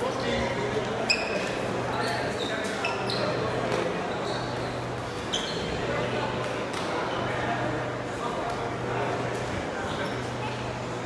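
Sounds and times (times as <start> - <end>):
murmur of voices: 0.0 - 11.0
shoes squeaking on floor: 1.0 - 5.9.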